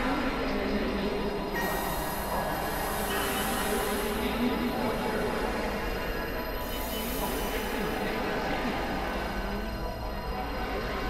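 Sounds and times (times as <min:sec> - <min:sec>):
electronic noise drone: 0:01.3 - 0:11.0.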